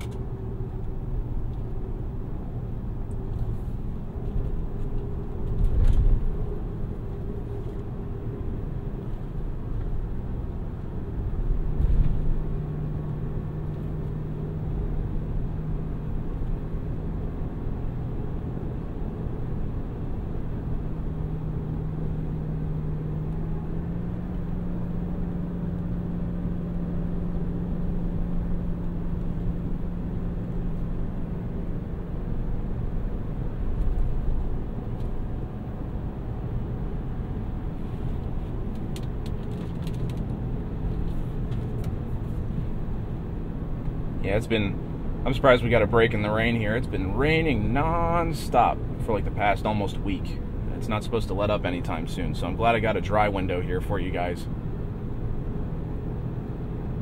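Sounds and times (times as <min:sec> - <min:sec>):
road rumble inside vehicle cab: 0:00.0 - 0:57.0
thumps from road bumps: 0:11.6 - 0:12.4.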